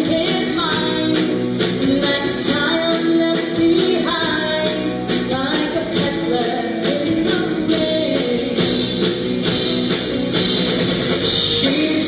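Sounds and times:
drum-kit beat: 0:00.0 - 0:12.0
rock band instrumental: 0:00.0 - 0:12.0.

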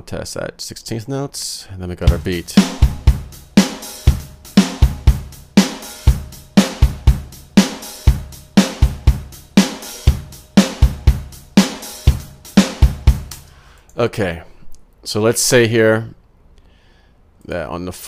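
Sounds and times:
drum machine beat: 0:02.0 - 0:13.5.

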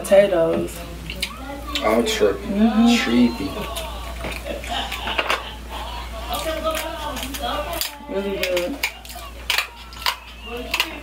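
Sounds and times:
crab shells cracking: 0:06.2 - 0:11.0.

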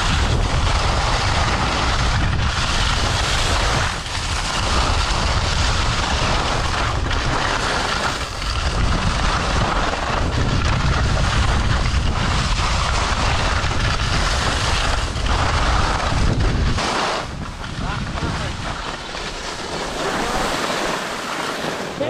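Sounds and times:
ski edges scraping snow: 0:00.0 - 0:22.0
wind rushing over microphone: 0:00.0 - 0:22.0.

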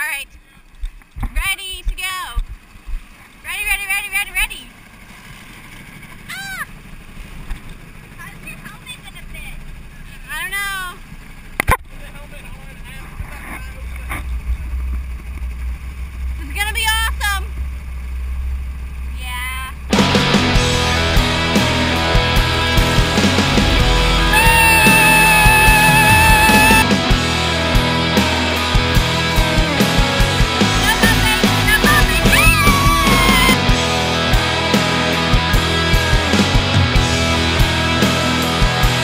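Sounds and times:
go-kart engines rumbling: 0:00.0 - 0:39.0
loud rock music: 0:19.9 - 0:39.0
voices shouting: 0:21.7 - 0:26.9, 0:30.6 - 0:34.2.

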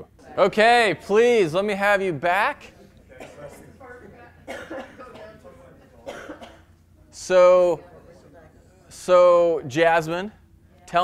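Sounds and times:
person coughing: 0:03.2 - 0:03.7, 0:04.4 - 0:05.4, 0:06.0 - 0:06.7.

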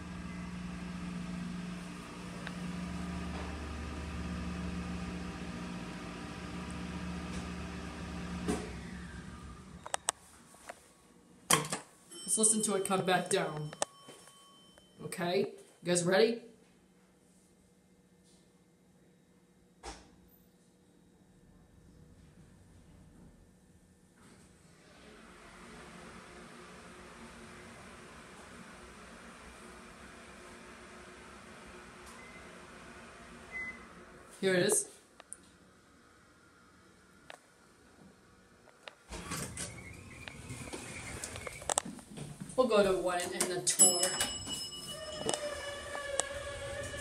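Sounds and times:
elevator door sliding open: 0:39.1 - 0:42.4, 0:43.2 - 0:47.0.

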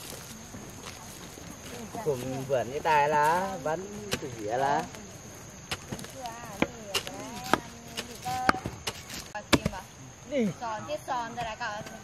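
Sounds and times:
hoe chopping into soil: 0:05.7 - 0:09.8.

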